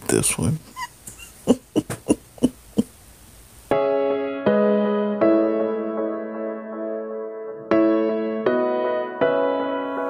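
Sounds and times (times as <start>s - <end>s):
woman laughing: 0.8s - 2.9s.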